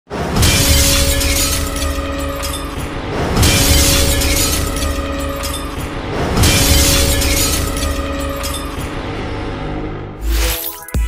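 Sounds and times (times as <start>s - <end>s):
glassy shattering hit: 0.4s - 8.8s
cinematic music with deep bass: 0.5s - 11.0s.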